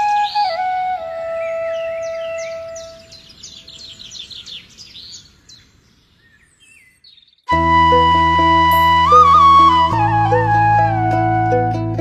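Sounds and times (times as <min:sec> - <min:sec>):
birds chirping: 0:00.0 - 0:07.6
flute long held note: 0:07.5 - 0:12.0.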